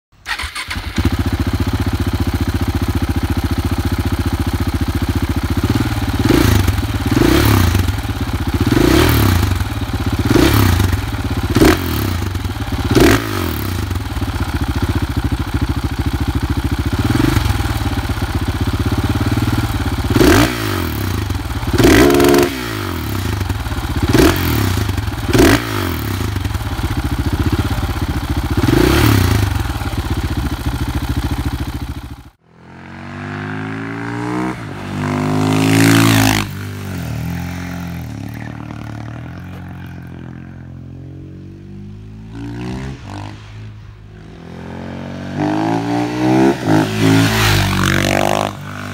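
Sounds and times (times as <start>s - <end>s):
motorcycle engine revving: 0.2s - 48.9s.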